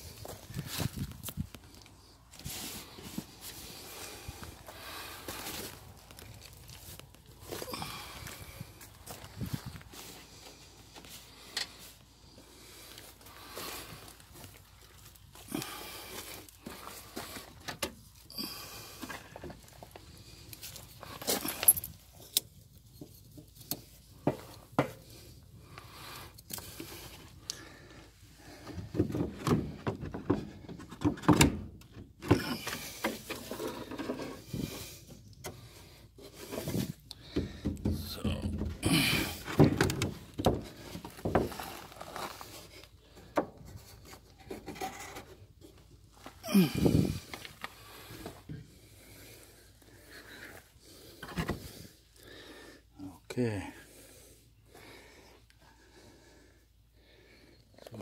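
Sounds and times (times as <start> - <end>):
wooden boards knocking and scraping: 28.7 - 34.7, 36.4 - 41.8.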